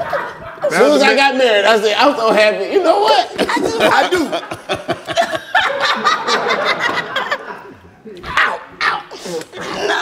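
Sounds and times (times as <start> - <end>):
people laughing and snickering: 0.0 - 1.3, 2.8 - 8.0, 9.0 - 10.0.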